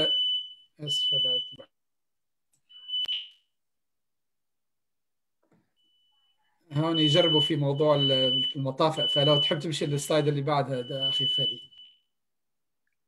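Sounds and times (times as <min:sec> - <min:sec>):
high-pitched alarm tone: 0:00.0 - 0:01.7, 0:05.9 - 0:12.0
person speaking: 0:00.8 - 0:01.7, 0:06.6 - 0:11.6
alarm click: 0:02.8 - 0:03.4.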